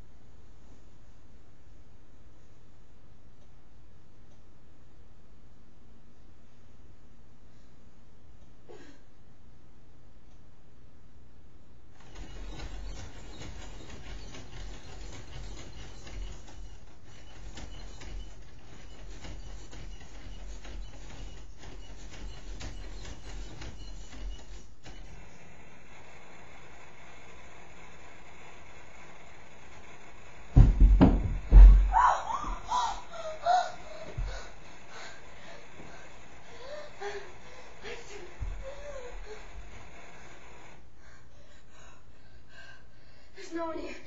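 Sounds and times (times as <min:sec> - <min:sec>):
short squeaks: 0:12.0 - 0:25.4, 0:31.3 - 0:40.7
loud thumps: 0:30.6 - 0:33.0.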